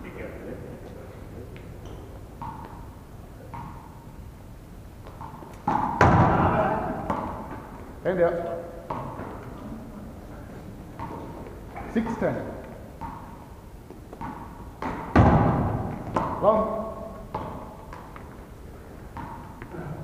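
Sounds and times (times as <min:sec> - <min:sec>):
thuds of ball play: 0:05.1 - 0:07.7, 0:14.2 - 0:16.5
player shouting: 0:06.3 - 0:07.0
hand slapping ball: 0:12.6 - 0:18.4.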